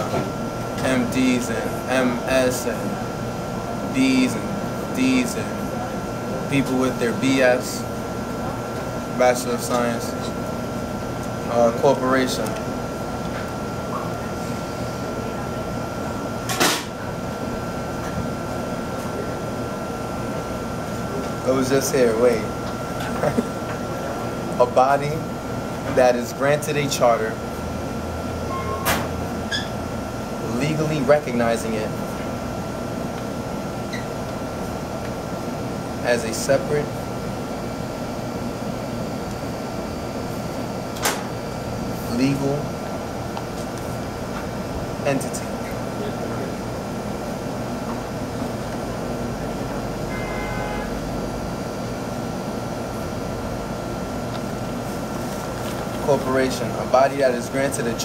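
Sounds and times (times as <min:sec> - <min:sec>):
constant thin whine: 0:00.0 - 0:58.0
low machine hum: 0:00.0 - 0:58.0
electronic beep: 0:28.5 - 0:28.9
thin high whine: 0:28.5 - 0:29.8, 0:49.4 - 0:51.9.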